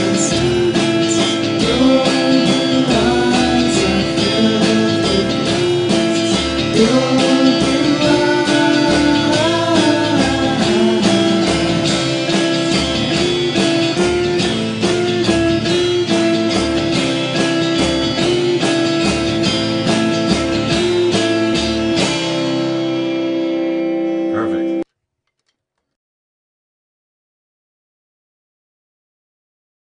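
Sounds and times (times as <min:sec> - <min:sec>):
lead guitar with bent notes: 0:00.0 - 0:24.8
electric guitars strumming: 0:00.0 - 0:24.9.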